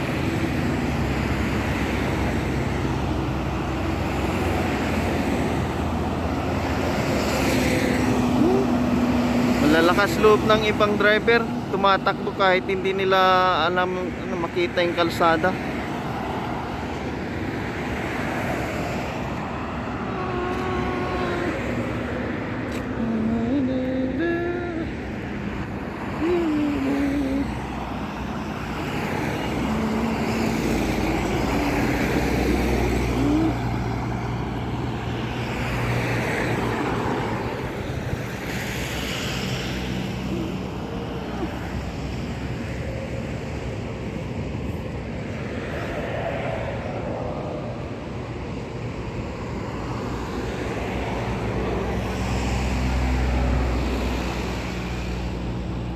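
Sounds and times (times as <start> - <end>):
vehicle engine and tyre noise: 0.0 - 55.9
short voices: 8.1 - 9.0, 20.0 - 22.1, 22.7 - 25.2, 26.0 - 27.8, 29.4 - 33.9.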